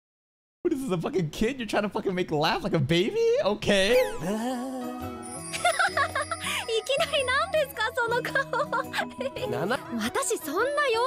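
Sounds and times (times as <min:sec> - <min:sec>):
light background music: 0:02.6 - 0:11.0
girl's high-pitched squealing voice: 0:06.7 - 0:08.4, 0:10.4 - 0:11.0.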